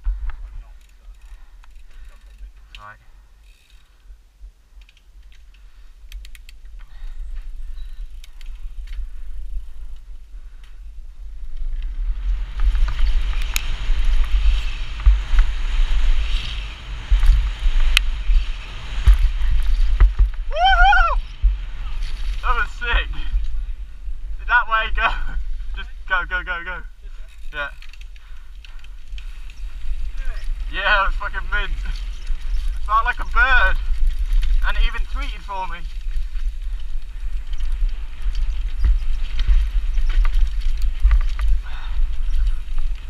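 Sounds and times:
wind rush: 8.6s - 27.3s.

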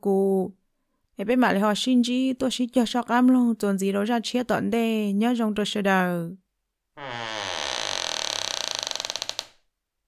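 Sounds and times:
long creak: 7.0s - 9.7s.

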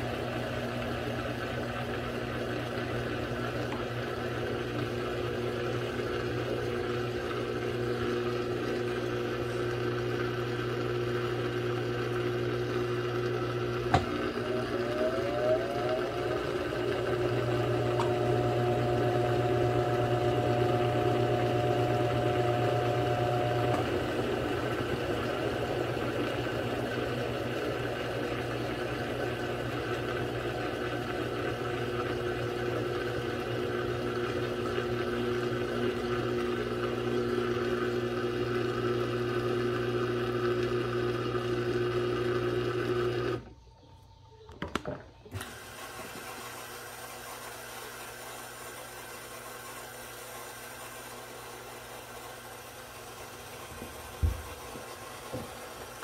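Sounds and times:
washing machine spinning: 0.0s - 43.8s, 45.2s - 56.0s.

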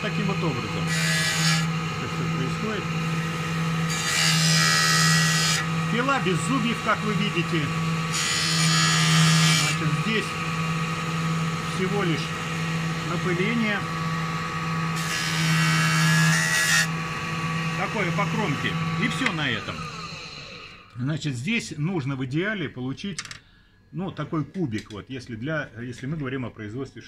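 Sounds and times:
saw grinding into stone: 0.0s - 10.4s, 11.2s - 20.8s
bench saw humming: 0.0s - 20.9s.

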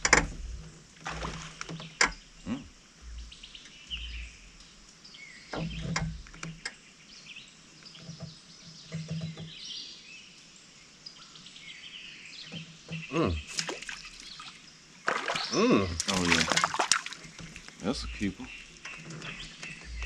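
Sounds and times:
low voice: 2.4s - 2.7s, 13.1s - 13.6s, 15.5s - 16.6s, 17.8s - 18.5s
birds chirping and calling: 3.0s - 10.3s, 11.1s - 20.0s.

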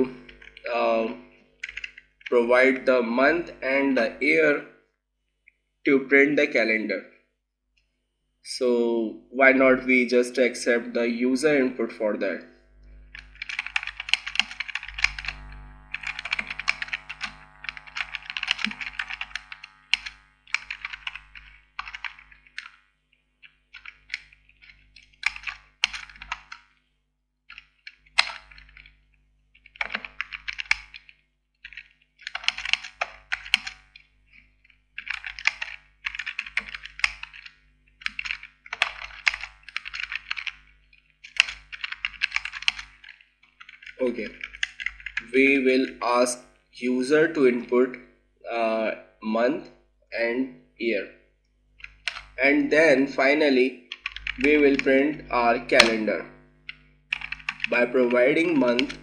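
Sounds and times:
typing on computer keyboard: 1.6s - 2.3s, 13.1s - 22.8s, 23.4s - 26.6s, 29.6s - 34.1s, 35.0s - 40.6s, 41.2s - 45.3s, 51.8s - 52.4s, 53.9s - 55.0s, 56.7s - 59.0s.

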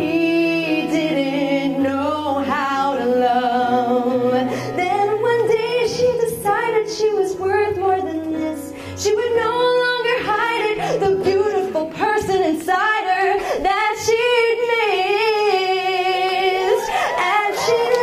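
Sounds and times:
woman singing slow song: 0.0s - 18.0s.

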